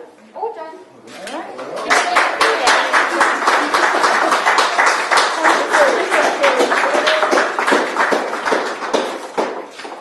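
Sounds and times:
people clapping: 1.3s - 10.0s.

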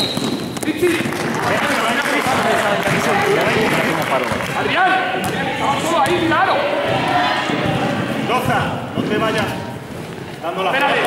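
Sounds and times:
basketball bouncing on court: 0.0s - 1.3s
players and spectators shouting: 1.2s - 8.9s.

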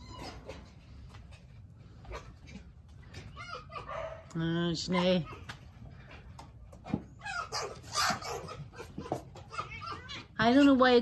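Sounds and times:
foxes yipping and squealing: 0.0s - 0.7s, 1.9s - 4.3s, 6.8s - 10.6s.

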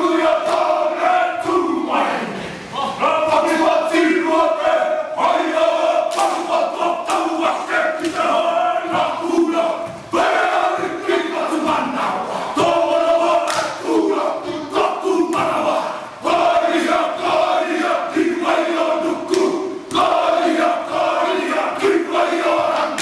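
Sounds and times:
group of men chanting: 0.0s - 23.0s.

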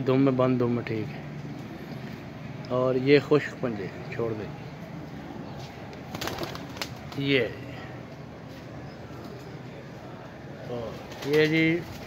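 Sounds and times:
pigeon wings flapping: 6.1s - 7.3s, 11.0s - 12.0s.

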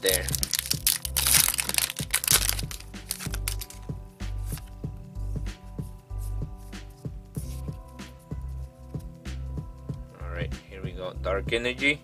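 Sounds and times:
foil wrapper tearing and crinkling: 0.0s - 3.8s
background music with steady beat: 0.0s - 12.0s.

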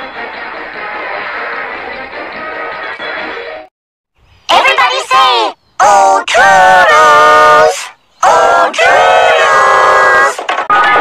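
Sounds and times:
pitch-shifted cartoon voices shouting: 4.5s - 11.0s.

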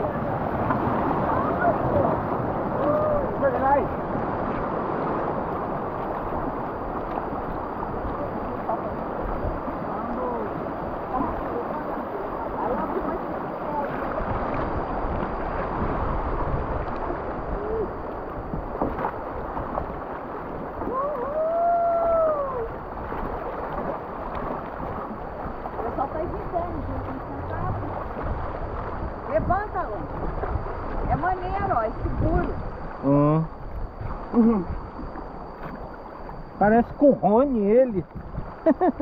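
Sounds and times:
river water rushing: 0.0s - 31.2s.

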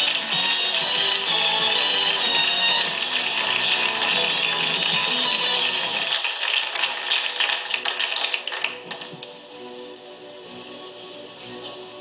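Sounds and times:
people clapping: 0.0s - 9.4s.

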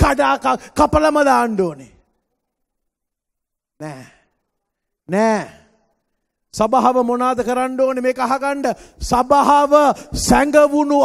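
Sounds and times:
man speaking into a microphone: 0.0s - 2.0s, 3.8s - 4.2s, 5.0s - 5.8s, 6.5s - 11.0s.

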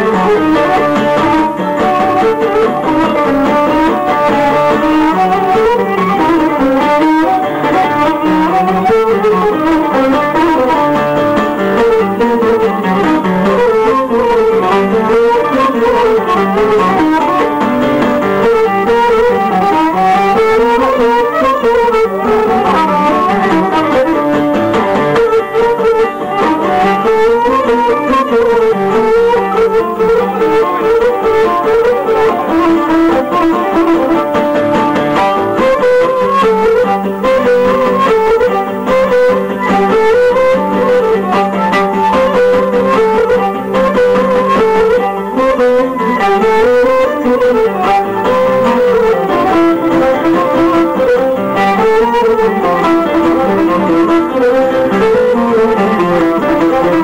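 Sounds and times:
bowed lyra melody: 0.0s - 57.0s
strummed acoustic guitar: 0.0s - 57.0s.

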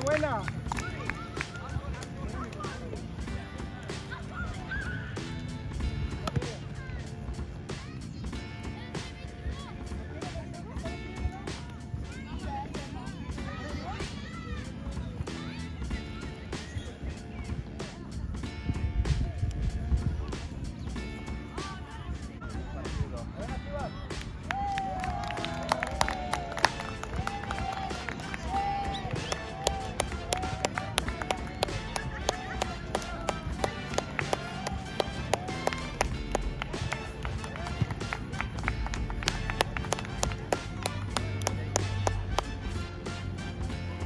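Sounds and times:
music: 0.0s - 44.0s
voices: 0.0s - 44.0s
hands slapping high-fives: 6.1s - 6.6s, 24.1s - 42.6s.

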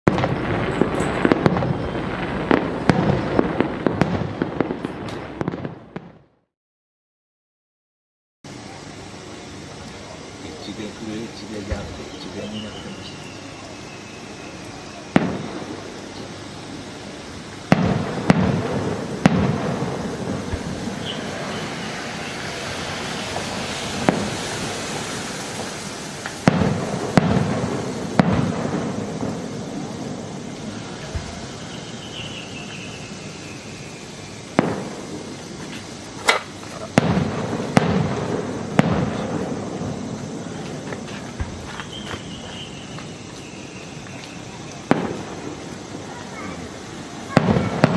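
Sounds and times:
fireworks bursting with echo: 0.1s - 6.5s, 8.5s - 47.9s.

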